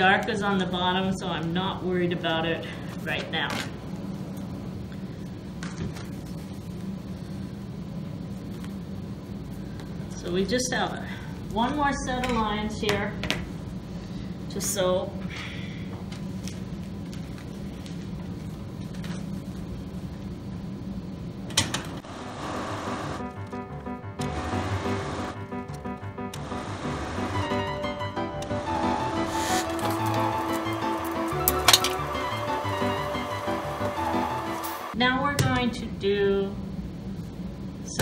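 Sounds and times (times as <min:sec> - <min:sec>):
sewing machine humming: 0:22.0 - 0:23.4, 0:24.2 - 0:25.5, 0:26.3 - 0:35.0
background music with held notes: 0:22.3 - 0:35.0.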